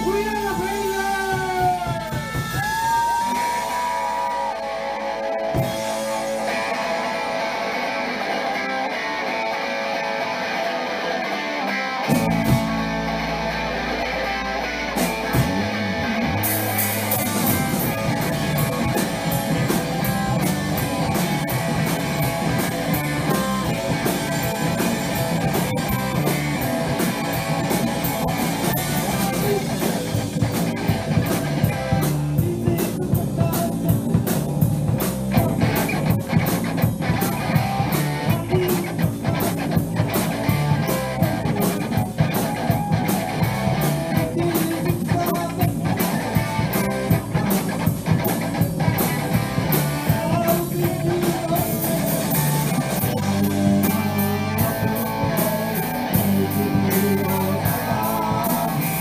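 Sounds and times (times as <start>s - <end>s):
electric guitar sustained notes: 0.0s - 32.7s, 45.7s - 59.0s
bass: 0.0s - 59.0s
rock band with drums: 0.0s - 59.0s.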